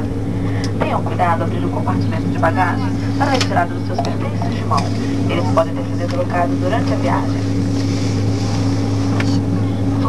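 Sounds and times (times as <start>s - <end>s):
airliner cabin engine drone: 0.0s - 10.0s.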